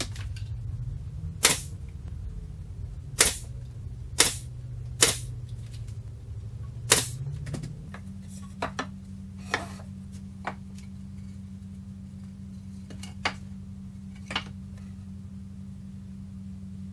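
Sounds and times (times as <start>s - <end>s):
steady low hum: 0.0s - 16.9s
nail gun firing: 1.4s - 1.7s, 3.2s - 3.5s, 4.2s - 5.3s, 6.9s - 7.2s.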